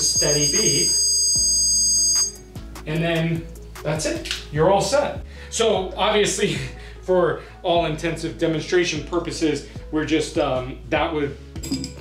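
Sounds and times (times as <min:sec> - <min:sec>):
continuous high electronic beep: 0:00.0 - 0:02.5.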